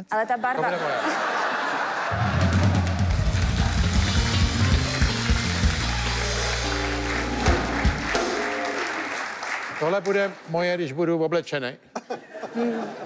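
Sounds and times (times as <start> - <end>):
bass line: 2.1 - 8.8
drum kit: 2.1 - 9.2.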